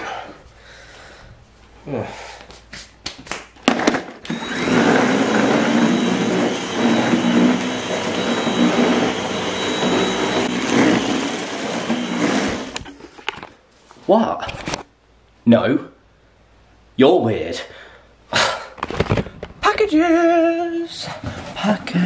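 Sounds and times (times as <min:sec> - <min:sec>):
stick vacuum cleaner running: 0:03.8 - 0:12.9.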